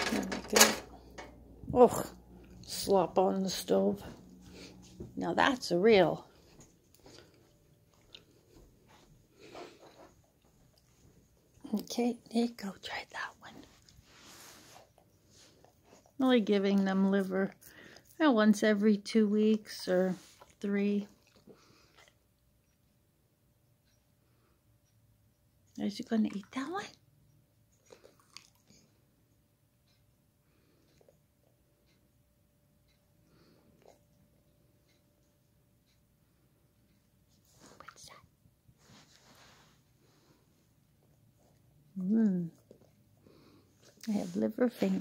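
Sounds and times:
soft rustle: 0:03.5 - 0:17.4, 0:19.7 - 0:22.0, 0:36.9 - 0:45.0.

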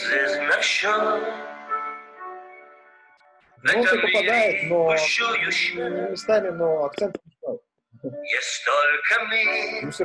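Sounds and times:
man singing with instruments: 0:00.0 - 0:01.4, 0:03.6 - 0:07.1.

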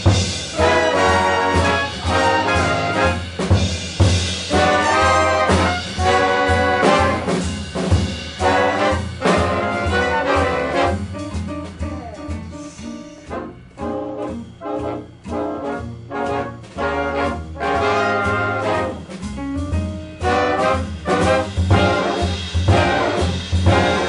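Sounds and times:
drum kit: 0:00.0 - 0:24.0
swing big band playing: 0:00.0 - 0:24.0
walking upright bass: 0:00.0 - 0:24.0
brass section phrases: 0:00.5 - 0:03.4, 0:04.5 - 0:07.4, 0:08.4 - 0:11.3, 0:13.2 - 0:19.1, 0:20.2 - 0:24.0.

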